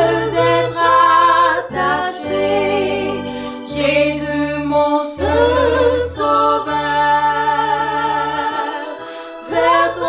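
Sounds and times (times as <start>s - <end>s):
low sustained keyboard: 0.0s - 10.0s
women singing religious song: 0.0s - 10.0s.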